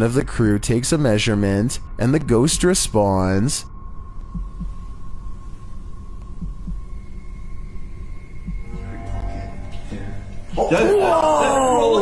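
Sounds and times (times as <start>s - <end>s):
low steady hum: 0.0s - 12.0s
heartbeat thumps: 2.3s - 2.9s, 4.2s - 5.6s, 6.2s - 7.1s, 8.4s - 9.4s.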